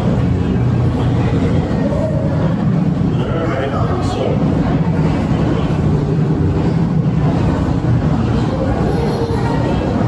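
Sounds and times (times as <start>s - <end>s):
low rumbling hum: 0.0s - 10.0s.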